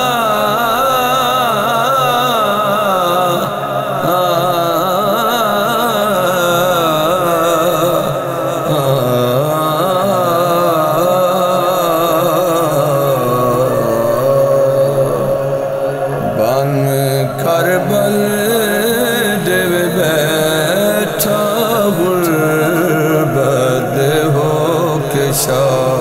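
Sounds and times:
voices chanting a lament: 0.0s - 26.0s.

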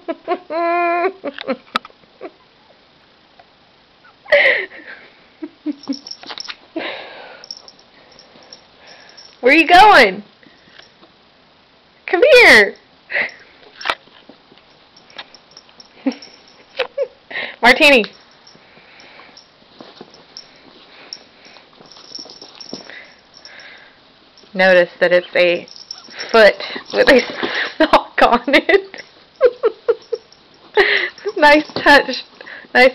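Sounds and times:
soft rustles: 18.1s - 23.8s, 25.6s - 27.9s.

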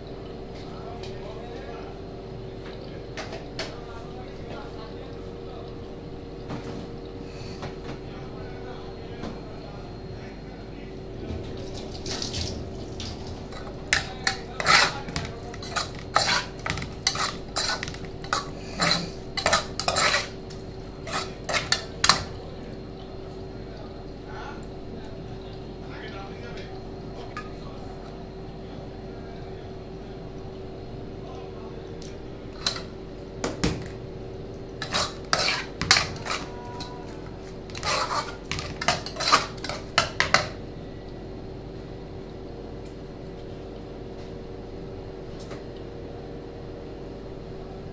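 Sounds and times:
steady low hum: 0.0s - 47.9s
metal spoon scraping saucepan: 13.5s - 22.3s, 34.8s - 40.6s.

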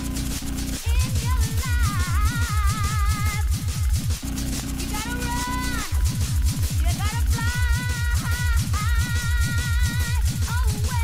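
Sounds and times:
hard techno music: 0.0s - 11.0s
low buzzing drone: 0.0s - 11.0s.

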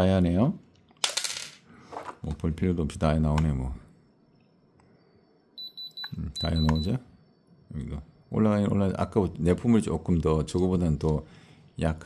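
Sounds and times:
rapid high-pitched pulsed beep: 5.2s - 7.4s.

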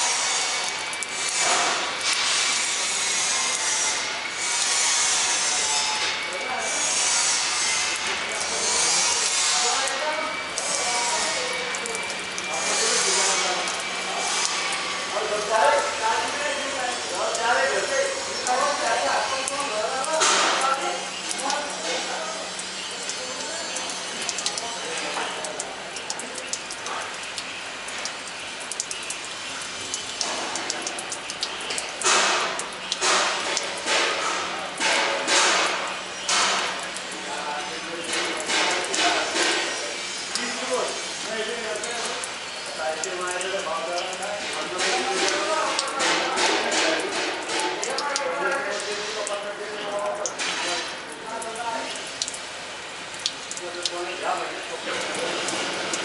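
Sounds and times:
water spraying from pipe: 0.0s - 56.0s.

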